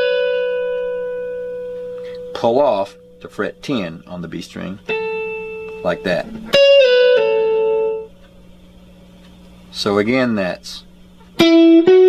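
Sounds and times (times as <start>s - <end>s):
electric guitar note sustaining: 0.0s - 9.2s, 11.4s - 12.0s.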